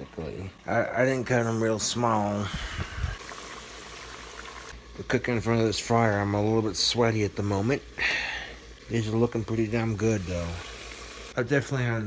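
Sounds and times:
oil sizzling and crackling: 0:00.0 - 0:11.8.

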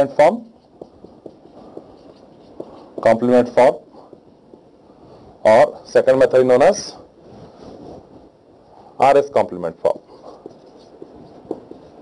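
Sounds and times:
marker scratching on whiteboard: 0:00.0 - 0:04.8, 0:09.9 - 0:12.0.

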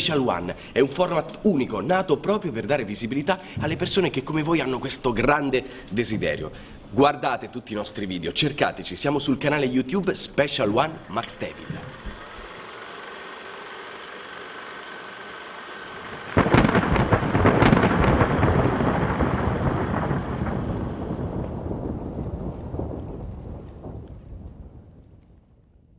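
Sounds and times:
faint steady background noise: 0:00.0 - 0:12.3
thunder-like crash rumbling: 0:16.3 - 0:25.6.

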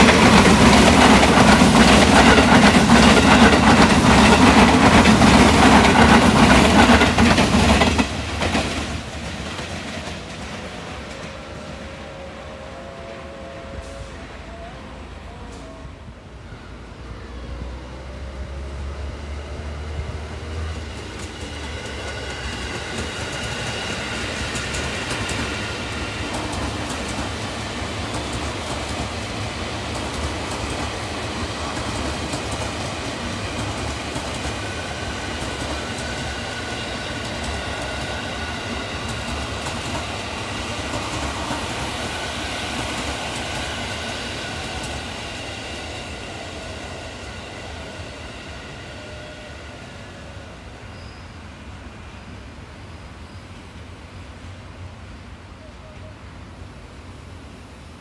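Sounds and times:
high whining train tones: 0:00.0 - 0:58.0
train wheels rumbling on rails: 0:00.0 - 0:58.0.

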